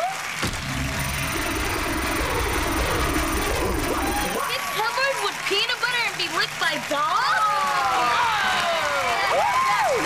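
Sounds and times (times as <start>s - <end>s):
thin high whine: 0.4s - 4.7s
low engine-like rumble: 0.5s - 4.4s.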